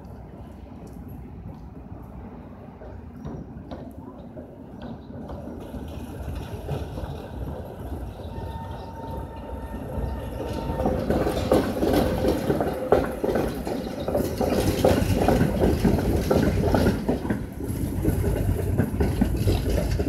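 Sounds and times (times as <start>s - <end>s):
tram wheels clattering over rails: 0.3s - 20.0s.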